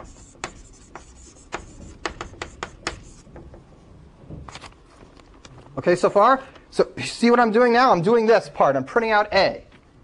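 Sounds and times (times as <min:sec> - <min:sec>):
marker tapping on board: 0:00.0 - 0:03.2
scratchy writing hiss: 0:00.0 - 0:03.6.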